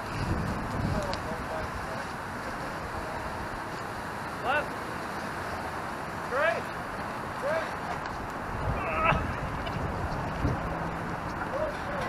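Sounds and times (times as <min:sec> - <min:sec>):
street noise: 0:00.0 - 0:12.0
wind: 0:00.0 - 0:12.0
people shouting calls: 0:06.3 - 0:06.7, 0:07.4 - 0:07.8.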